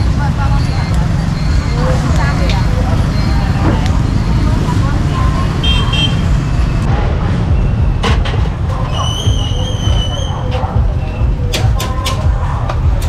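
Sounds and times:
motorbike traffic rumble: 0:00.0 - 0:13.0
voices talking: 0:00.0 - 0:13.0.

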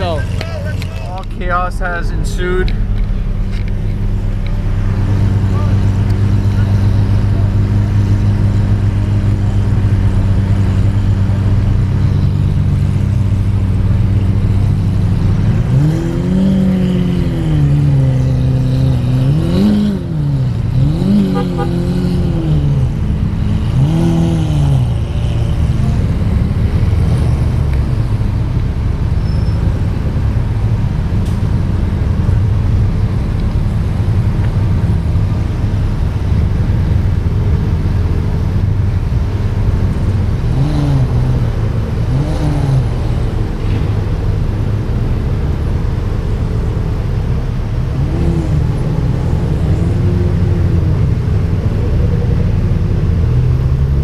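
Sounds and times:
car engines idling: 0:00.0 - 0:54.0.

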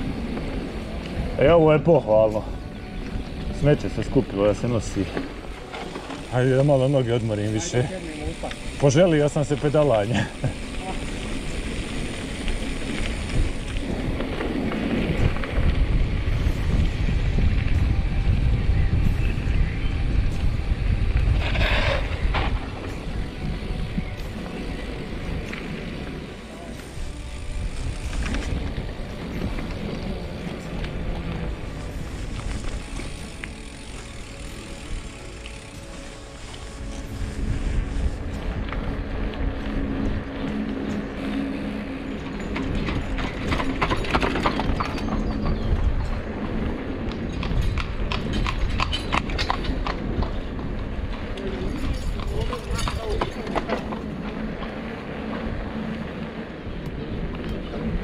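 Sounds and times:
wind rumble on camera: 0:00.0 - 0:58.0
horse hooves clip-clopping: 0:20.4 - 0:58.0.

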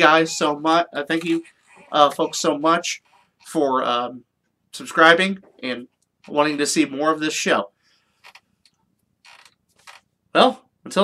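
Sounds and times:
chair creaks and clicks: 0:08.2 - 0:10.1.

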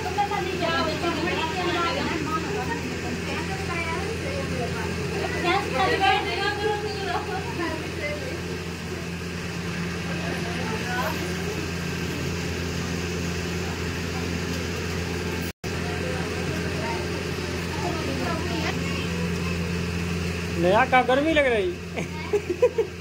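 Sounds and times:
faint voices talking: 0:00.0 - 0:22.5
low-pitched machine hum: 0:00.0 - 0:23.0.

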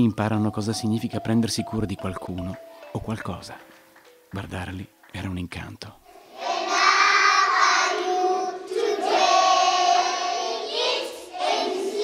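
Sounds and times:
children singing: 0:06.1 - 0:12.0.

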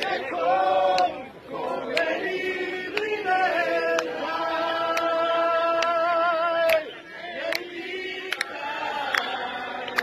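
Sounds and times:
voices singing along: 0:00.0 - 0:10.0.

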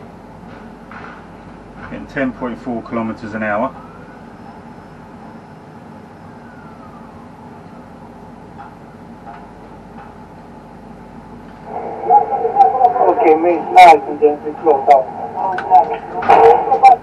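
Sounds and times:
faint motor whine: 0:00.0 - 0:17.0
mechanical hum: 0:00.0 - 0:17.0.

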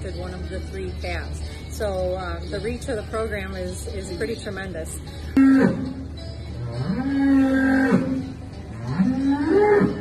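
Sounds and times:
calf mooing: 0:05.4 - 0:10.0.

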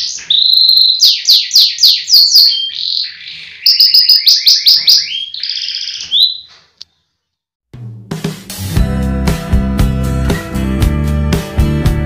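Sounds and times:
canary singing: 0:00.0 - 0:07.0.

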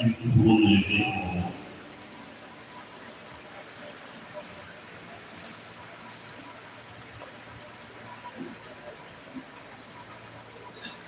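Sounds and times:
man speaking into microphone: 0:00.0 - 0:01.6.

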